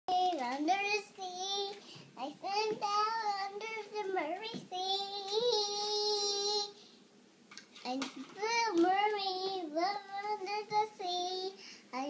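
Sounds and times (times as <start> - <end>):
girl singing: 0.1 - 6.8, 7.8 - 12.0.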